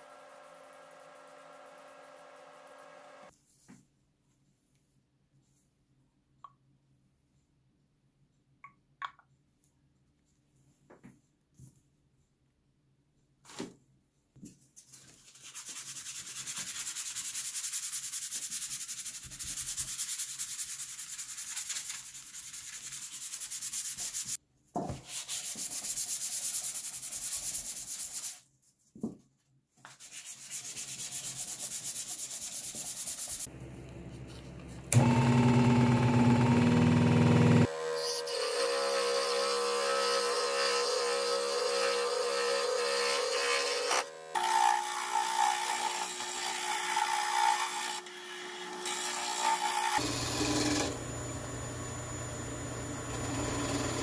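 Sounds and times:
sanding sponge rasping on metal: 15.2s - 24.4s, 30.0s - 33.5s
lathe motor humming: 34.9s - 37.9s, 50.0s - 54.0s.

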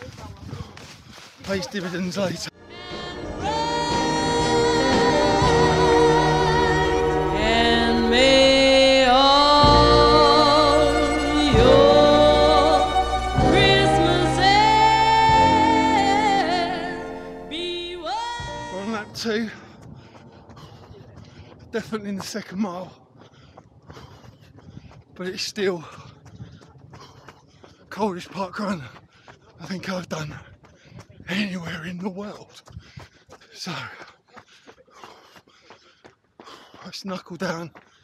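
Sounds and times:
running footfalls: 0.0s - 2.5s, 19.4s - 38.0s
background music: 2.5s - 19.2s
man breathing heavily: 19.4s - 21.8s, 22.9s - 25.2s, 25.8s - 28.0s, 28.8s - 29.7s, 30.3s - 31.2s, 32.6s - 37.0s, 37.7s - 38.0s.

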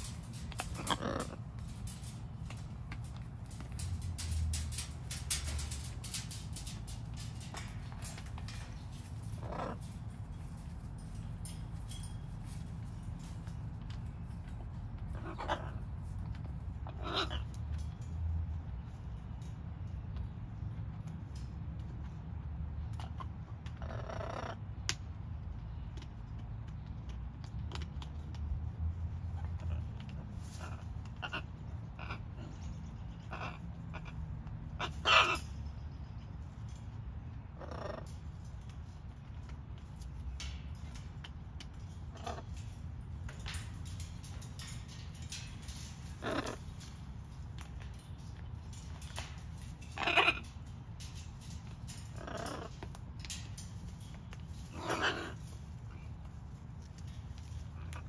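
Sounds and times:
macaw grumbling: 0.6s - 1.7s, 54.7s - 55.5s.

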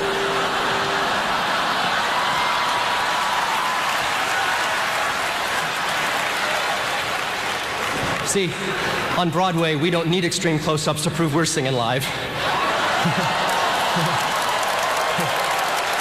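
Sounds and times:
audience applauding: 0.0s - 8.9s, 12.5s - 16.0s.

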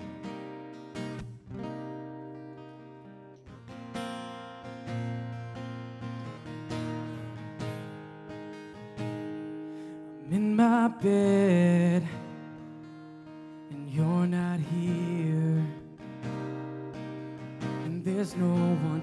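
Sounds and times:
acoustic guitar strumming: 0.0s - 19.0s
man singing: 10.2s - 12.4s, 13.7s - 16.0s, 17.7s - 19.0s.

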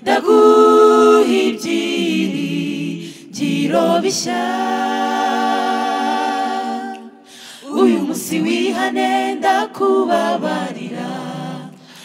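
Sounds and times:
choir holding long note: 0.0s - 11.8s.

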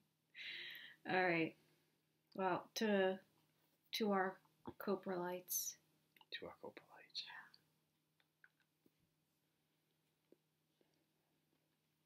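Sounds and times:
breathy whispered voice: 6.4s - 7.6s.

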